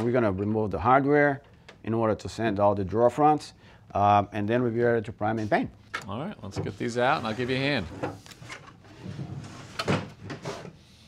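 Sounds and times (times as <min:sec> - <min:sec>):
wooden drawers sliding: 0:06.5 - 0:10.8.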